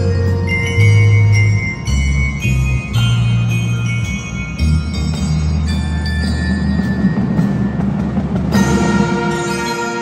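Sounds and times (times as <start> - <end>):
marching band music: 0.0 - 10.0
loud held brass chord: 8.6 - 10.0.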